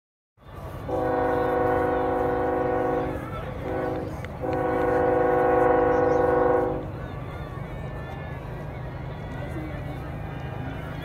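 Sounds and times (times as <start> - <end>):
horn blast: 0.8 - 6.9.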